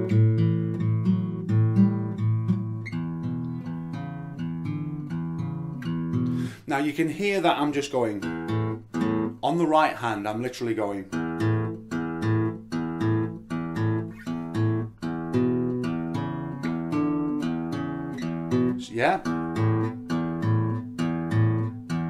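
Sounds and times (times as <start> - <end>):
acoustic guitar blues rhythm: 0.0 - 22.0.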